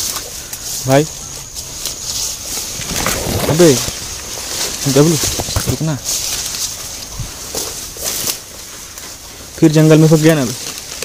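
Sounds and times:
steady high hiss: 0:00.0 - 0:10.6
leaves and undergrowth rustling: 0:00.0 - 0:11.0.

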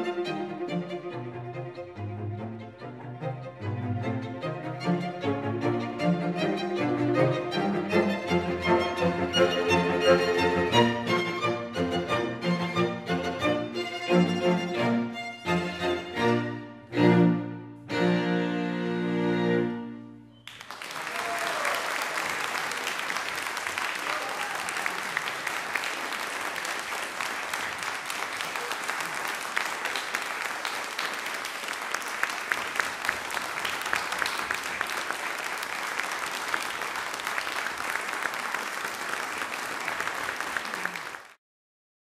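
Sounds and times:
audience applauding: 0:20.4 - 0:41.4.

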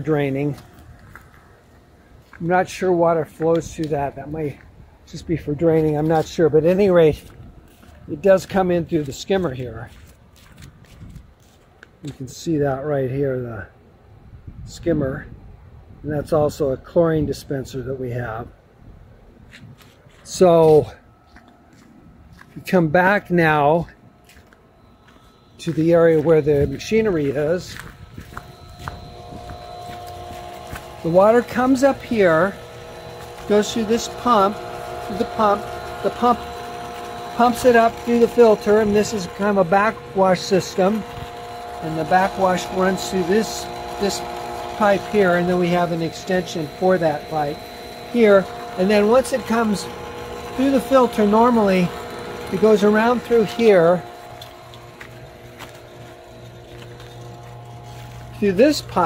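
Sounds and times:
footsteps on wood-chip mulch: 0:00.0 - 0:12.6, 0:19.4 - 0:59.0
pool pump motor humming: 0:00.0 - 0:14.2, 0:20.1 - 0:59.0.

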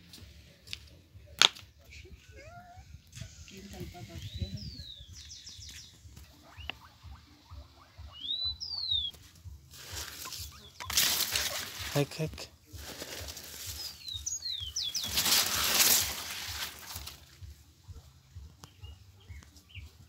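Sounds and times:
short whistled calls: 0:03.2 - 0:09.2, 0:10.0 - 0:11.6, 0:13.7 - 0:15.8
corn husks rustling: 0:09.0 - 0:17.5.

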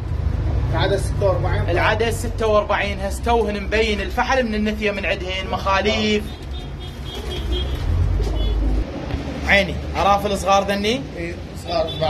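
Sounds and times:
pigeons cooing: 0:05.9 - 0:09.4
heavy low rumble: 0:07.4 - 0:10.3.

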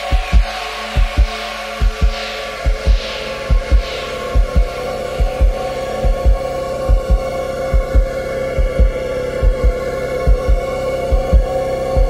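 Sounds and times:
held droning chord: 0:00.0 - 0:12.0
low double-thump pulse: 0:00.1 - 0:12.0.

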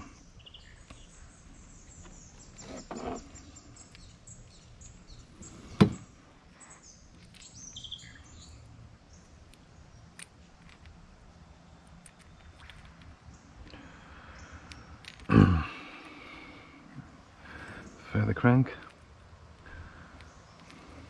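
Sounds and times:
small birds chirping: 0:00.0 - 0:21.0.

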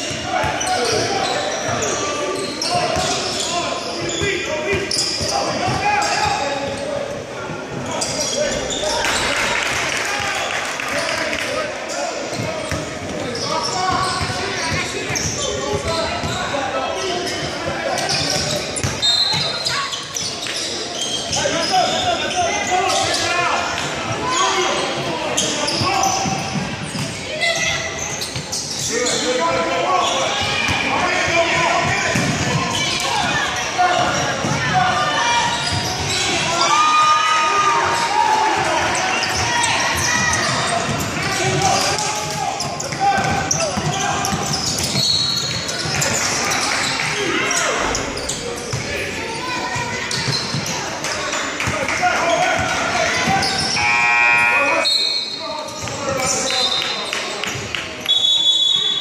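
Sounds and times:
voices echoing in gym: 0:00.0 - 0:59.0.

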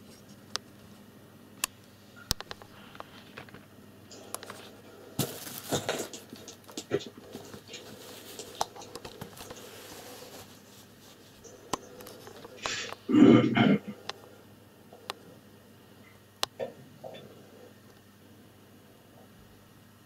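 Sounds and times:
phone rustling and clicking: 0:01.6 - 0:13.0.

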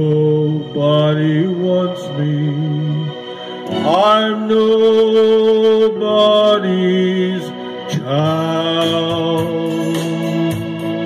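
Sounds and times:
man singing: 0:00.0 - 0:10.6
backing music: 0:00.0 - 0:11.0.

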